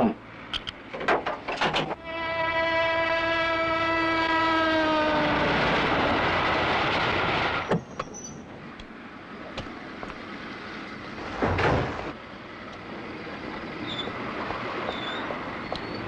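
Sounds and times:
passing train rumble: 0.0 - 16.0
train horn long note: 2.0 - 6.0.

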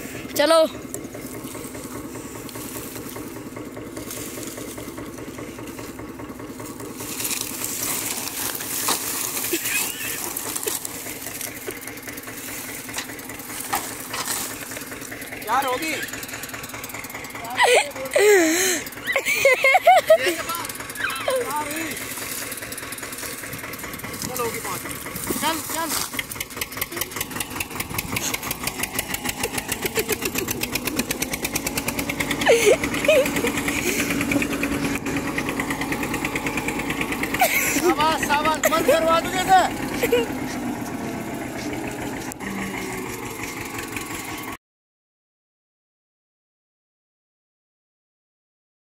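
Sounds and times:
tractor engine idling: 0.0 - 44.6
sharp knocks of cane stalks: 6.6 - 15.1, 22.0 - 31.2.

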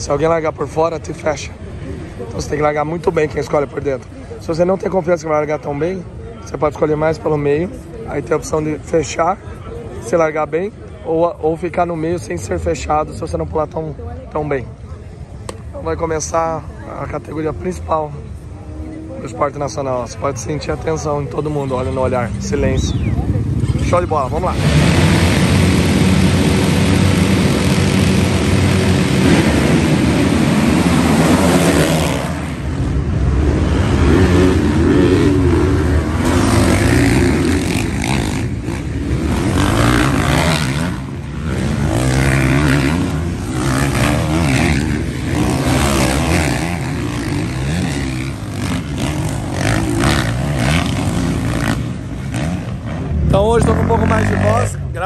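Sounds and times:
motocross bikes revving: 16.1 - 55.0.

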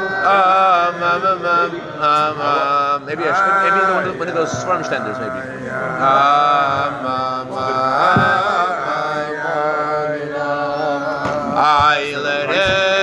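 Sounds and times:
men singing a wordless melody: 0.0 - 13.0.

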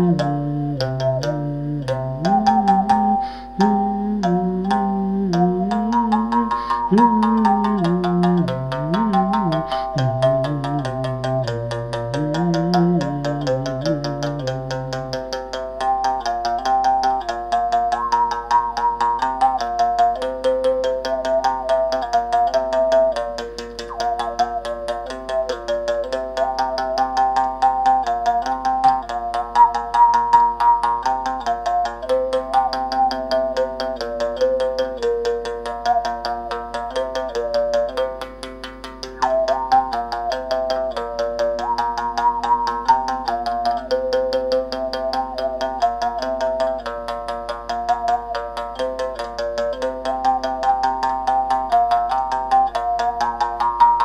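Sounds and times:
mouth bow string struck rhythmically: 0.0 - 54.0.

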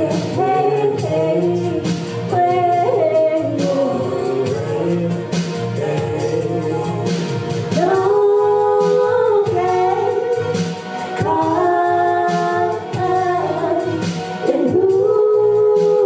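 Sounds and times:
women singing into microphones: 0.0 - 7.0, 7.7 - 16.0
backing music: 0.0 - 16.0.

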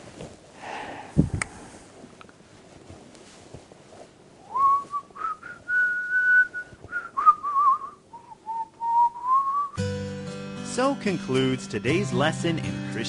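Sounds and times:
man whistling a tune: 4.5 - 9.9.

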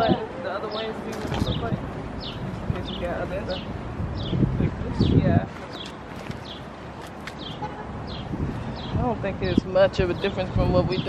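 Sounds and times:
bird chirping: 0.0 - 11.0
outdoor background noise: 0.0 - 11.0.

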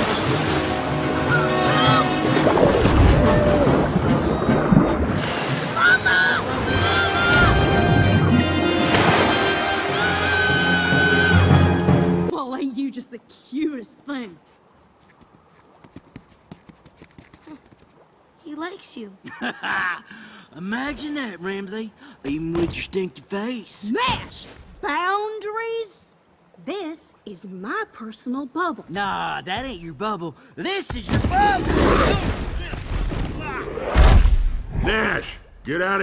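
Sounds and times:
rushing floodwater churning: 0.0 - 11.9
dramatic orchestral music: 0.0 - 12.3
light footsteps on hard ground: 14.8 - 18.2.

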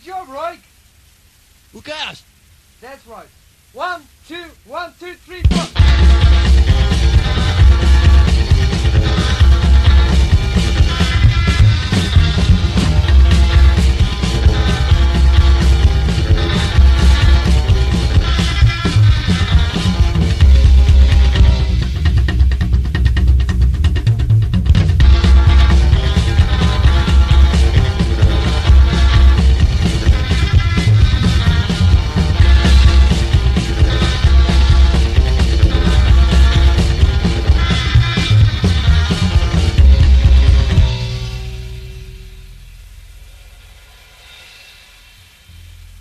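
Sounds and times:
rockabilly band playing: 5.4 - 42.5.

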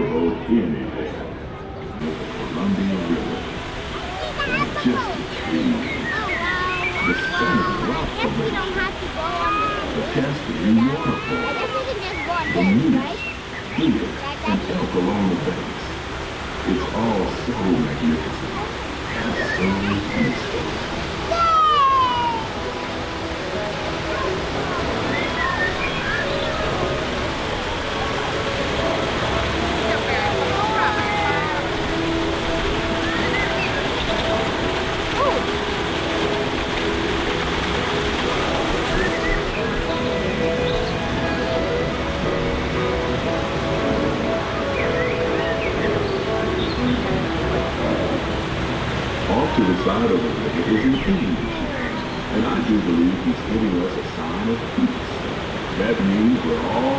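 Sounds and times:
background music with held notes: 0.0 - 56.9
water rushing: 0.0 - 56.9
passenger chatter: 18.2 - 44.7.

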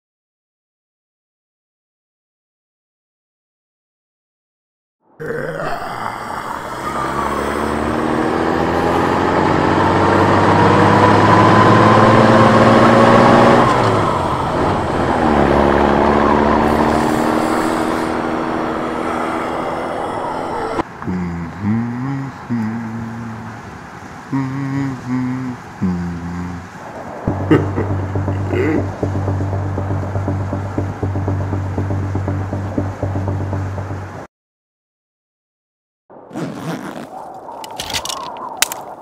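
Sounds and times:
truck engine pulling away: 5.9 - 20.8, 27.3 - 34.3
music: 27.3 - 34.3.

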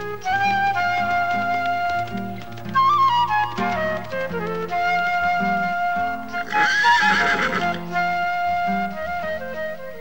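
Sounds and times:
flute-led background music: 0.0 - 10.0
horse whinnying: 6.4 - 7.9.

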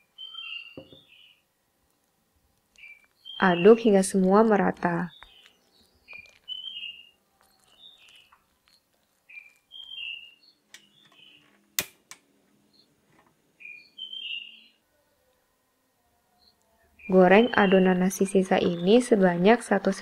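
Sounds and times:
birds chirping: 0.0 - 1.5, 2.7 - 11.7, 12.5 - 15.4, 16.3 - 20.0.

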